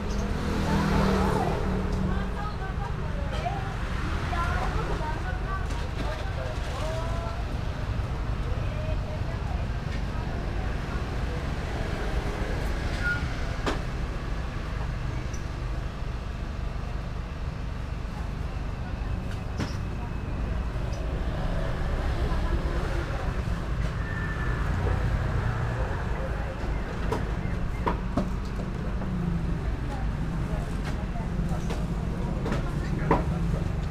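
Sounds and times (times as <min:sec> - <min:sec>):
road traffic rumble: 0:00.0 - 0:33.9
faint voices: 0:17.8 - 0:33.9.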